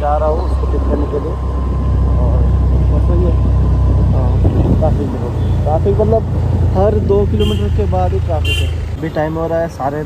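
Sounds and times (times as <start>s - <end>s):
road noise: 0.0s - 10.0s
scooter engine: 0.0s - 10.0s
wind buffeting microphone: 0.2s - 7.2s.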